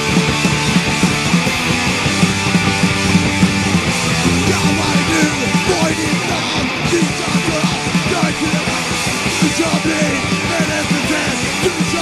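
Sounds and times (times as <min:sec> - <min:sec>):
distorted electric guitars: 0:00.0 - 0:12.0
fast driving drums: 0:00.0 - 0:12.0.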